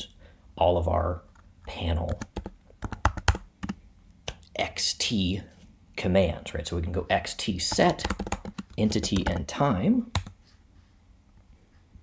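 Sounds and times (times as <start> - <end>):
typing on computer keyboard: 2.0 - 3.8, 7.7 - 9.5, 10.2 - 10.4.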